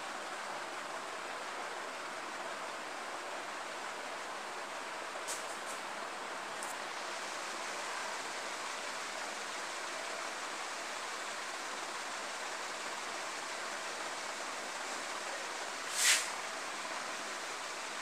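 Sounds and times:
steady background hiss: 0.0 - 18.0.

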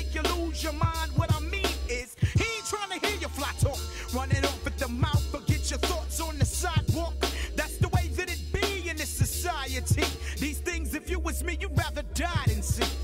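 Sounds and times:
bassline: 0.0 - 13.0
hip hop drum beat: 0.0 - 13.0
rap vocals: 0.0 - 13.0.

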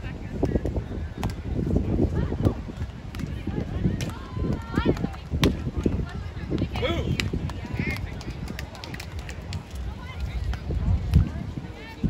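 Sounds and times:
faint voices of people: 0.0 - 12.0
wind buffeting microphone: 0.0 - 12.0.

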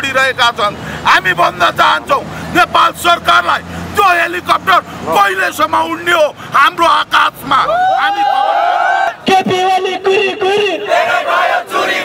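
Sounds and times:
man shouting: 1.3 - 11.1.

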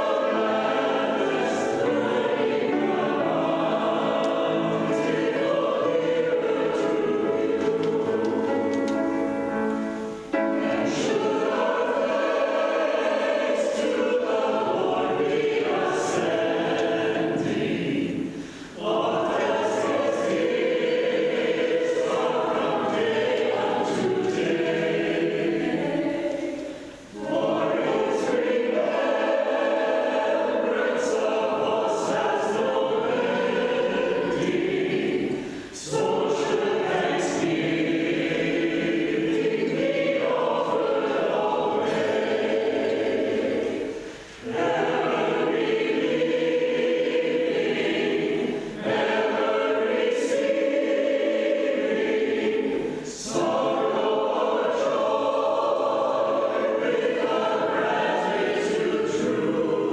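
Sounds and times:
church choir singing: 0.0 - 59.9.

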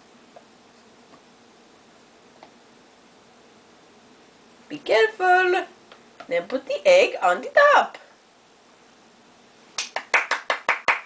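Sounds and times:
person clapping hands: 9.8 - 11.0.

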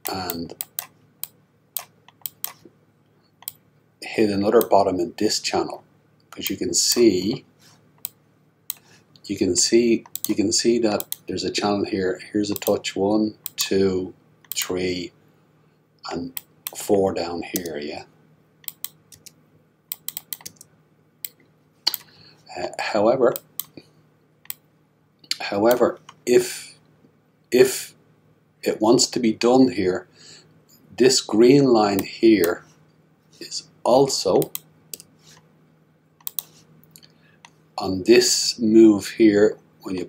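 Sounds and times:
sharp computer clicks: 0.0 - 2.7, 3.4 - 3.6, 6.2 - 6.6, 10.0 - 10.4, 11.0 - 11.3, 12.5 - 12.8, 14.4 - 14.7, 16.3 - 16.9, 18.6 - 22.1, 23.3 - 23.8, 34.3 - 35.1, 36.2 - 36.5.

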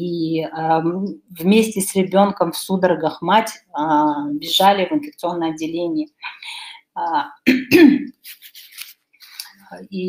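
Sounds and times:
person clearing throat: 7.5 - 8.2.

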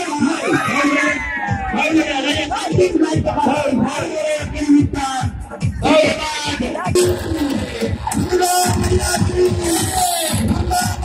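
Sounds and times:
crowd shouting: 0.0 - 2.5
loud music with drum beat: 0.0 - 11.0.

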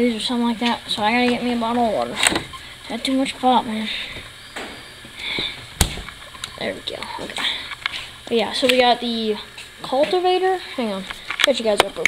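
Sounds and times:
refrigerator door clacking shut: 5.8 - 6.1.

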